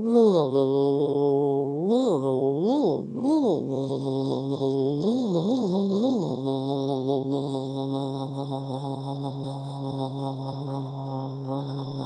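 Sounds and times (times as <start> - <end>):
synthetic voice droning vowel: 0.0 - 12.0.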